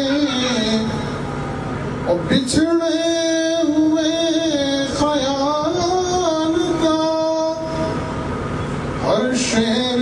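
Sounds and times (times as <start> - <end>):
man singing into a microphone: 0.0 - 1.3, 2.0 - 8.1, 9.0 - 10.0
steady rumbling noise: 0.0 - 10.0.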